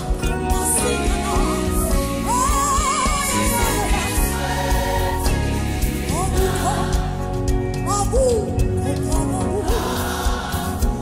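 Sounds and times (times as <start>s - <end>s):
gospel choir singing: 0.0s - 7.7s, 8.9s - 11.0s.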